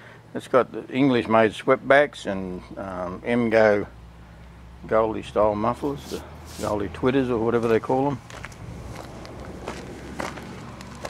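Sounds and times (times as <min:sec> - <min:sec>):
footsteps crunching on gravel: 0:05.9 - 0:11.0.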